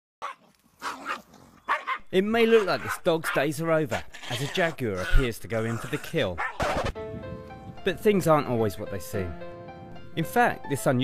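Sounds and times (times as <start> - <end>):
dog barking: 0.2 - 2.0, 6.4 - 6.8.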